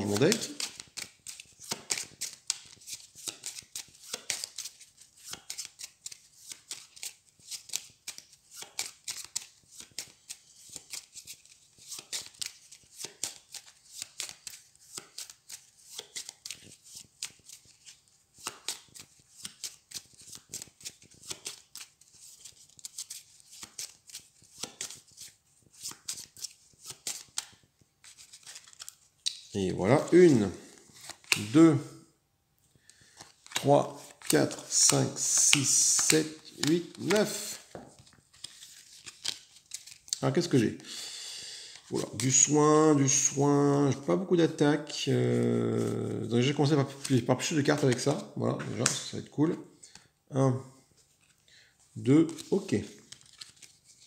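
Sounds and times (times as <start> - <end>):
cards being shuffled: 0.0 - 31.6, 32.8 - 40.8, 41.7 - 43.9, 45.3 - 50.1, 52.0 - 54.0.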